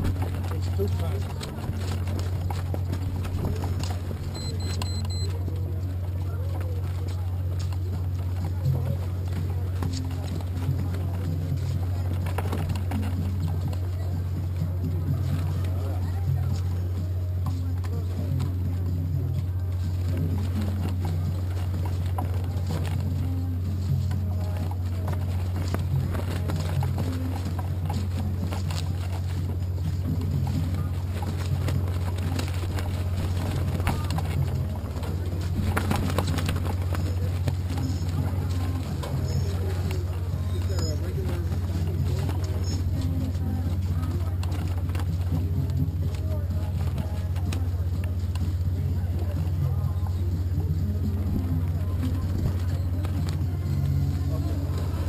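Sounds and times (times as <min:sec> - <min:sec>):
faint voices talking: 0:00.0 - 0:55.0
steady low hum: 0:00.0 - 0:55.0.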